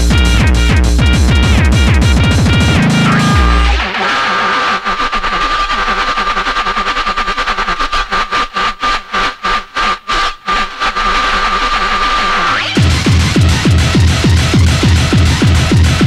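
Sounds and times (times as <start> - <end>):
stuttering chopped texture: 0.0 - 16.0
high synth tone: 2.1 - 4.0.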